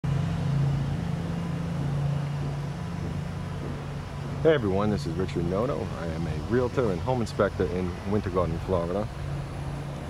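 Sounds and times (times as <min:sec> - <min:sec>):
low mechanical hum: 0:00.1 - 0:10.0.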